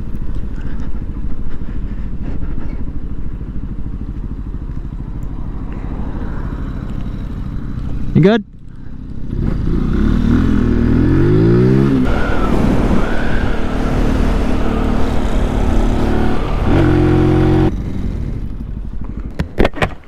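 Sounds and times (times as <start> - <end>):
motorcycle engine accelerating: 0.0 - 20.0
wind and road noise: 0.0 - 20.0.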